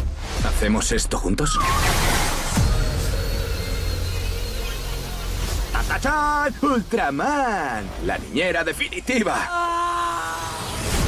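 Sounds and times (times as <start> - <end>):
electronic score: 1.6 - 8.0.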